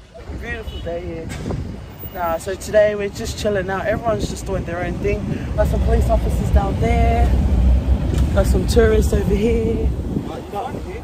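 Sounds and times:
vehicle rumble: 0:00.0 - 0:11.0
wind on microphone: 0:00.2 - 0:11.0.

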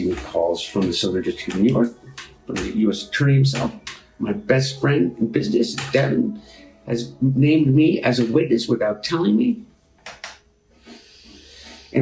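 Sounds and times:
man drawing breath: 0:10.8 - 0:12.0.

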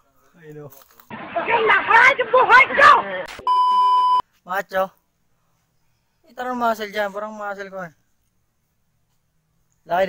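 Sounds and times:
bleep tone: 0:03.3 - 0:04.2.

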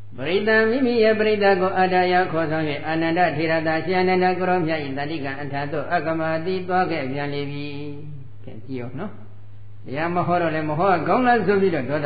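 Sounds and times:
monk chanting in monotone: 0:00.0 - 0:12.0.

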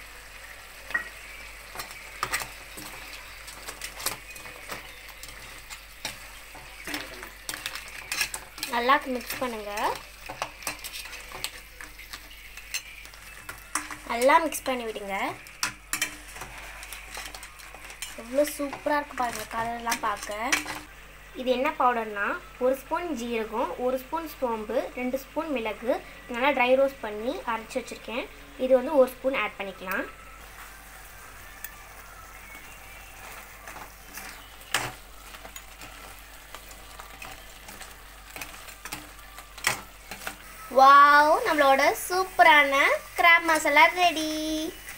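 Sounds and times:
food sizzling in a pan: 0:00.0 - 0:44.9
metal utensils clinking on steel: 0:00.9 - 0:20.9, 0:33.2 - 0:40.5.

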